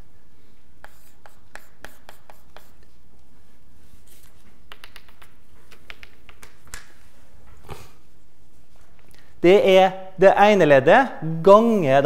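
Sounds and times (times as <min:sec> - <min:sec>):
chalk tapping and scratching: 0:00.8 - 0:03.3, 0:03.9 - 0:06.7.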